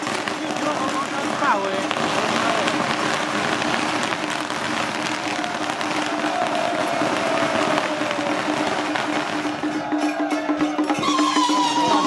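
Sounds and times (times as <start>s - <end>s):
firecrackers crackling: 0.0s - 10.2s.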